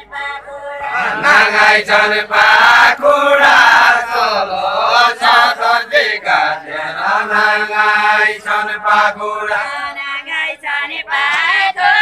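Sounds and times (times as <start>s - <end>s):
group chanting a folk song: 0.0s - 12.0s.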